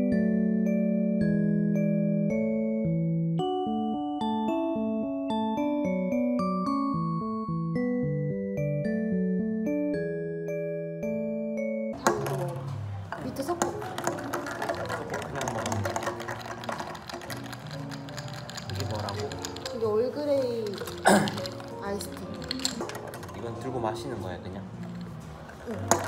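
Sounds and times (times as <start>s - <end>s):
ice clinking against glass: 13.4s - 26.0s.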